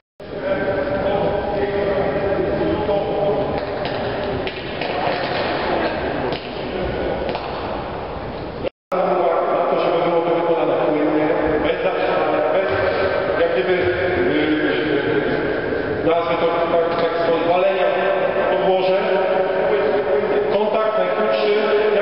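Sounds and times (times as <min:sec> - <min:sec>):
indistinct voices echoing in a hall: 0:00.2 - 0:22.0.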